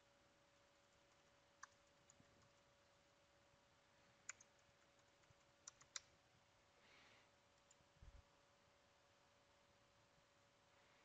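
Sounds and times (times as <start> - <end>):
faint steady hum: 0.0 - 11.0
keyboard clicks: 1.1 - 2.6, 4.2 - 6.1.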